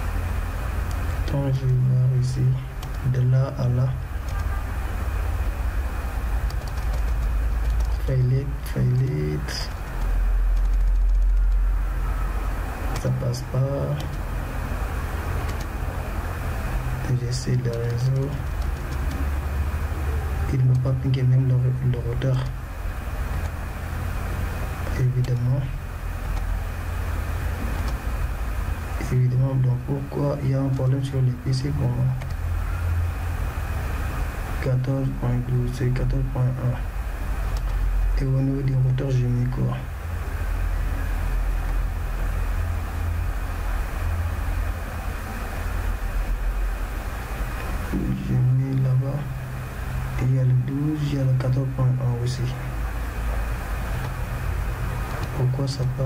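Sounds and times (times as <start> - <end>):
low rumbling background noise: 0.0 - 56.0.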